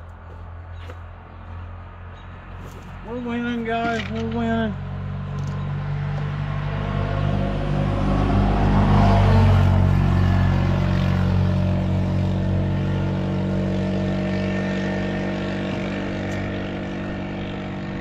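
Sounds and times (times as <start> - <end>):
engine droning: 0.0 - 18.0.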